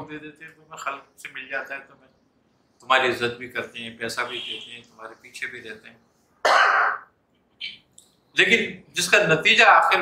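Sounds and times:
man clearing his throat: 0:06.5 - 0:07.0.

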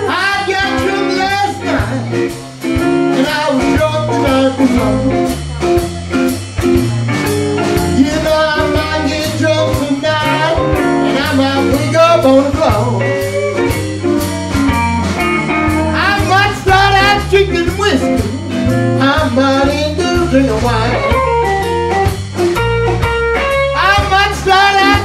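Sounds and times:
bass and drum groove: 0:00.0 - 0:25.0
blues band playing: 0:00.0 - 0:25.0
lead guitar bending notes: 0:00.0 - 0:25.0.

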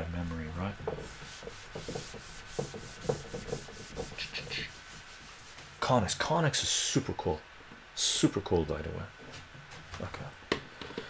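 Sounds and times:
cloth scrubbing a whiteboard: 0:00.6 - 0:06.3.

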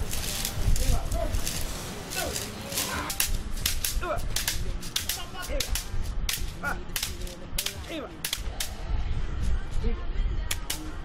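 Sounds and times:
bamboo sticks striking: 0:00.0 - 0:08.8, 0:10.5 - 0:11.0.

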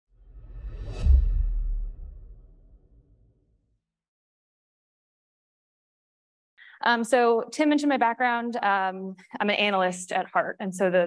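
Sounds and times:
whoosh: 0:00.1 - 0:03.3
deep low hit: 0:00.2 - 0:03.3.

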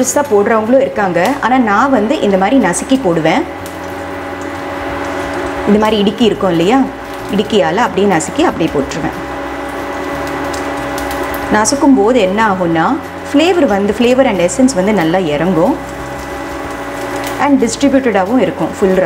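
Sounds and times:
ghee sizzling in a pan: 0:00.0 - 0:19.0
steady hum: 0:00.0 - 0:19.0.

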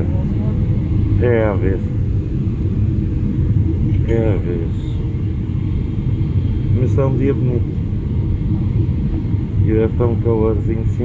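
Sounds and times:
airliner engines rumbling: 0:00.0 - 0:11.0
faint steady hum: 0:00.0 - 0:11.0.

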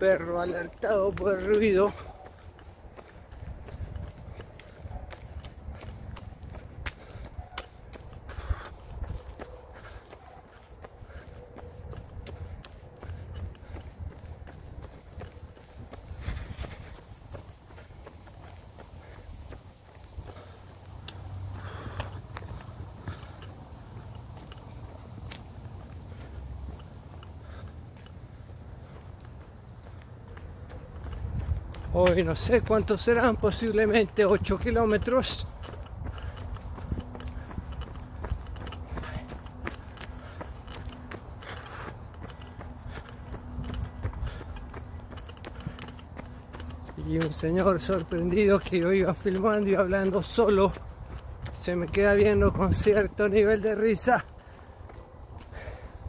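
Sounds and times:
running footsteps on a path: 0:00.0 - 0:56.0.

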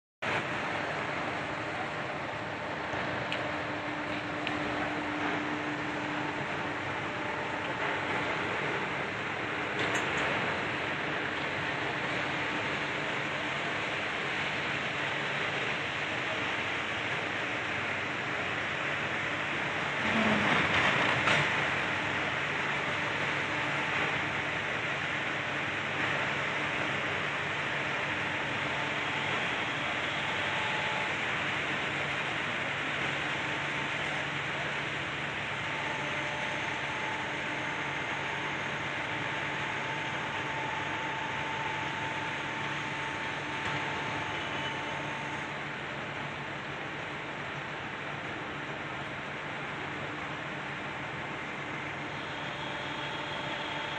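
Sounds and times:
rush of noise: 0:00.2 - 0:48.0.

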